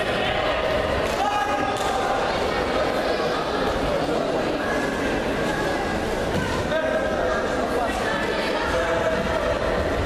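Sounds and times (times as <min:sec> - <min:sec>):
echoing voices and chatter: 0:00.0 - 0:10.0.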